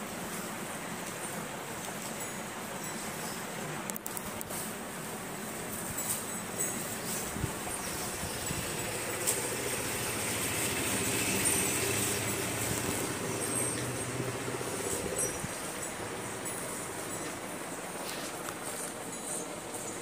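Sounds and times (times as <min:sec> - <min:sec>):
motor running steadily: 0:06.4 - 0:20.0.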